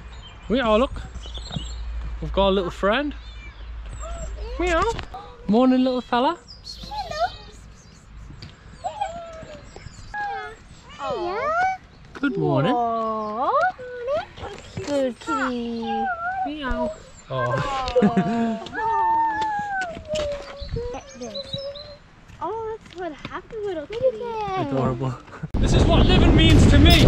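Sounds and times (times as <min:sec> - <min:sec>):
person's high voice: 0:06.8 - 0:07.6.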